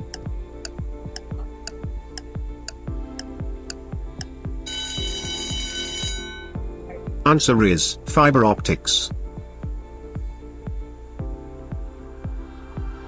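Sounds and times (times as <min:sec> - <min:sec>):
countdown timer music ticking: 0:00.0 - 0:11.4
alarm-like ring: 0:04.7 - 0:06.6.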